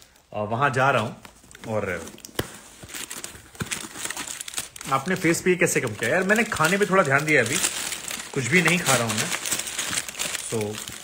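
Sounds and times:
crinkling handling noise: 0:00.0 - 0:11.0.

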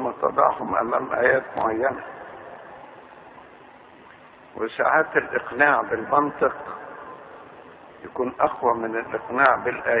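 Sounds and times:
background hiss: 0:00.0 - 0:10.0.

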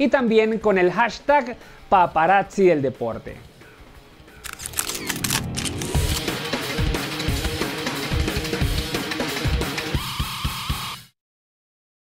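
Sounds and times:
camera shutter clicks: 0:04.4 - 0:06.3.

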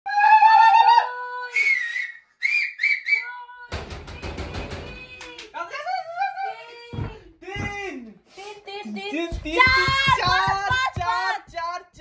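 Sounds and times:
high-pitched whistling: 0:01.5 - 0:03.3.

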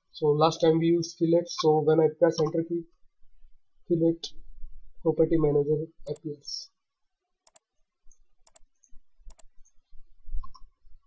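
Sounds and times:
computer mouse clicking: 0:07.4 - 0:10.7.

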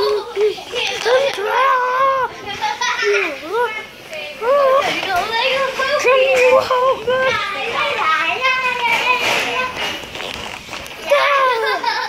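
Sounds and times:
boy making sing-song sounds: 0:00.0 - 0:09.8.

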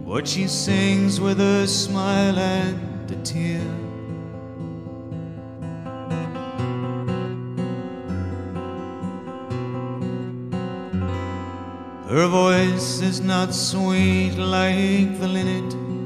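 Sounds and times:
acoustic guitar ballad: 0:00.0 - 0:16.0.

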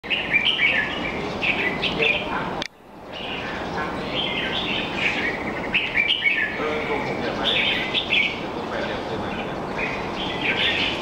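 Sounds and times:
bird warbling song: 0:00.0 - 0:11.0.

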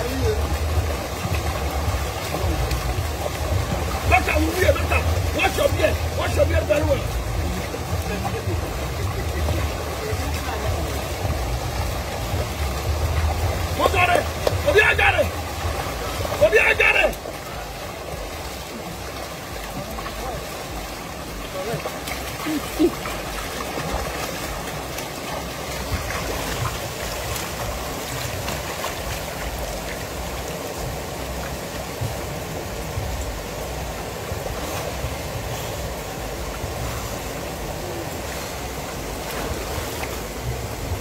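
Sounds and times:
rushing river water: 0:00.0 - 0:41.0
small waterfall: 0:00.0 - 0:41.0.

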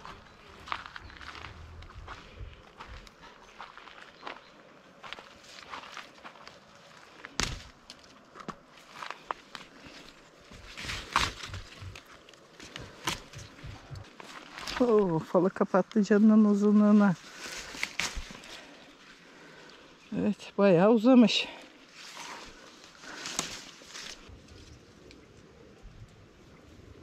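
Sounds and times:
footsteps on dry soil: 0:00.0 - 0:19.4.

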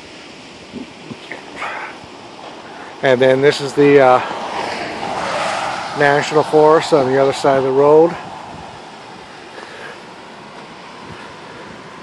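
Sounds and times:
vehicle passing on highway: 0:01.3 - 0:12.0.

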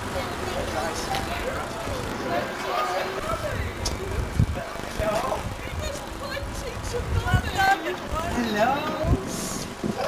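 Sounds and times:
crowd chatting and calling out: 0:00.0 - 0:10.0.

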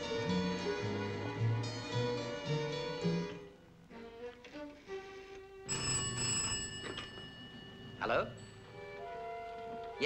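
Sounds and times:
sparse underscore music: 0:00.0 - 0:05.7, 0:07.8 - 0:10.0
telephone bell ringing: 0:05.7 - 0:09.2.

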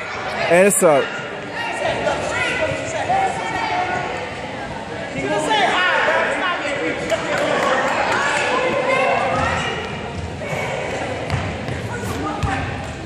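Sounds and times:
voices chattering and calling out: 0:00.0 - 0:13.0.

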